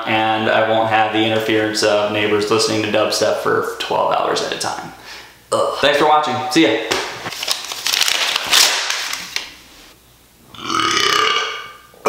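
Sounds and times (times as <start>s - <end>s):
notebook pages rustling: 7.2s - 9.5s.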